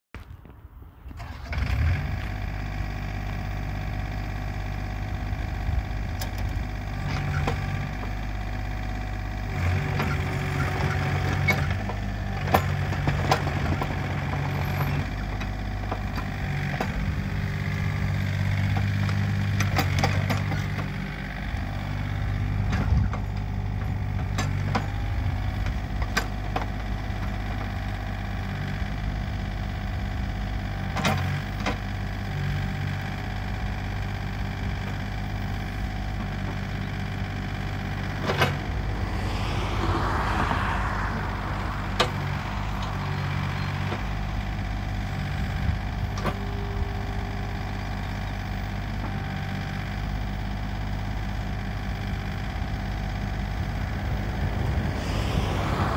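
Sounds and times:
excavator diesel engine running: 0:01.1 - 0:55.9.

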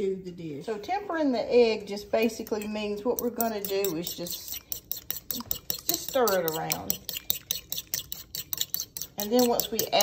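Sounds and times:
fork whisking egg in bowl: 0:02.3 - 0:10.0.

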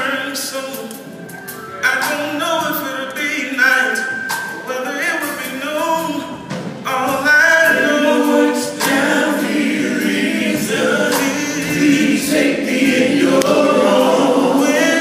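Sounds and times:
male vocal group singing: 0:01.8 - 0:15.0.

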